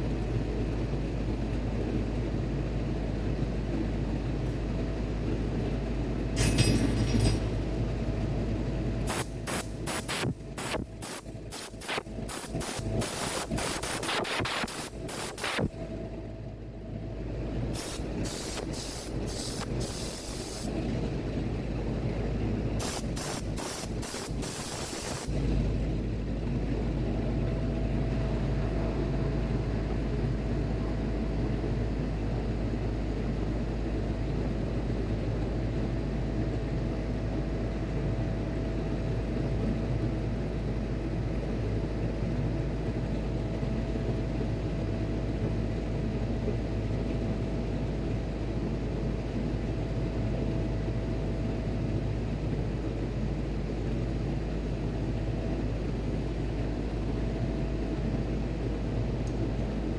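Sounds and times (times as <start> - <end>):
faint steady whine: 0.0 - 59.9
machinery hum and rumble: 0.0 - 59.9.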